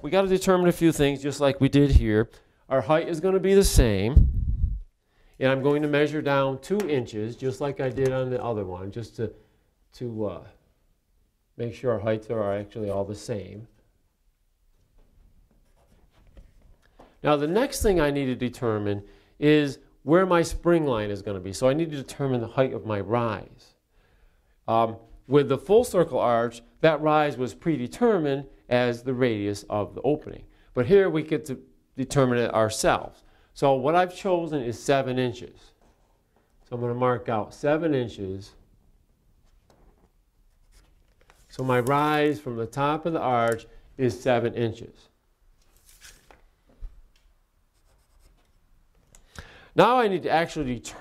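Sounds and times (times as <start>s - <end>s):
pencil scratching on drywall: 47.7s - 48.6s.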